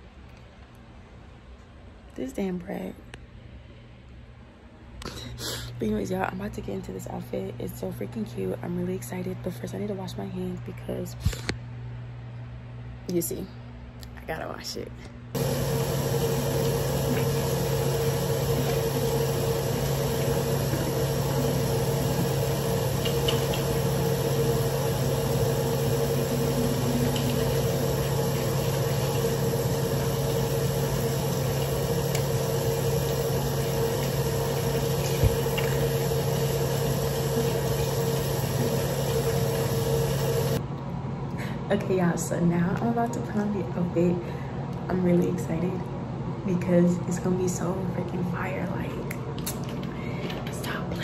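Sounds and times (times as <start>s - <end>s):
low hum: 15.0s - 41.6s
sink tap running: 15.4s - 40.6s.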